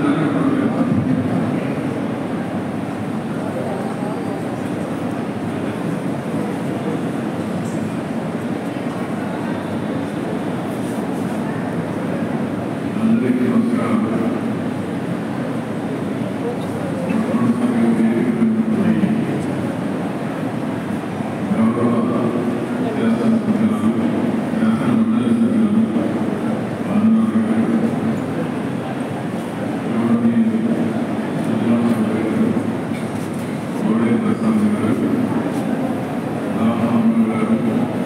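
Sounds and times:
man speaking over loudspeakers: 0.0 - 1.9, 12.8 - 14.6, 16.3 - 19.8, 21.3 - 29.0, 29.7 - 32.9, 33.6 - 38.0.

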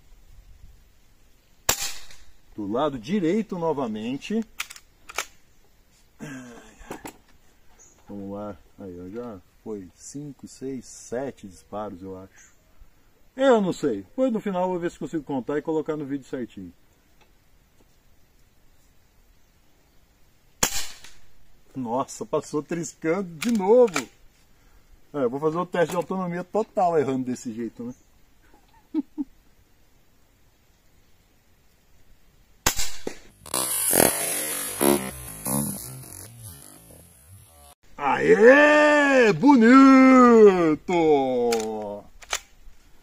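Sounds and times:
air rifle shot: 1.7 - 2.4, 20.6 - 21.3, 32.6 - 35.6.

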